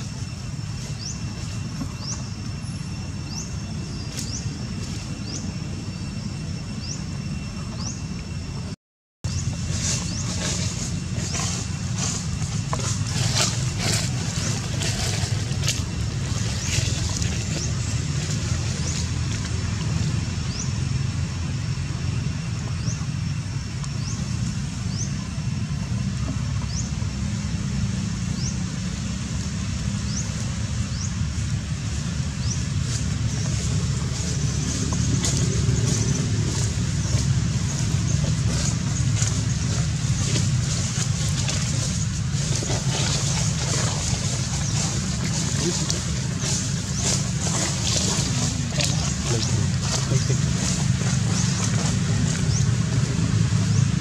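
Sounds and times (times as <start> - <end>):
steady low rumble: 0.0 - 54.0.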